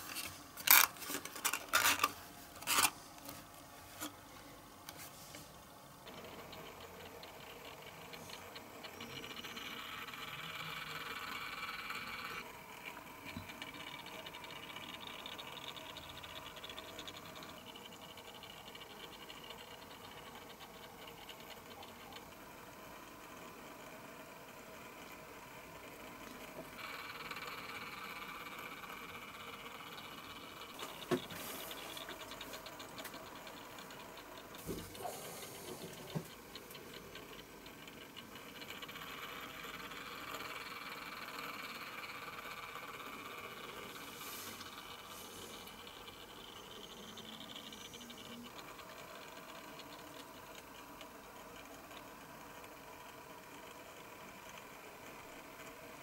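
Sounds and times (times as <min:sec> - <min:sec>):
turntable motor whirring and rattling: 0:00.0 - 0:56.0.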